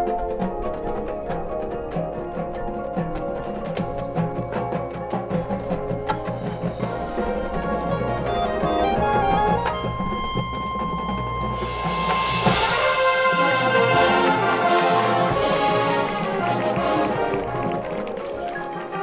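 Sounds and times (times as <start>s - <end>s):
marching band playing: 0.0s - 19.0s
percussion: 0.0s - 19.0s
brass section: 8.2s - 19.0s.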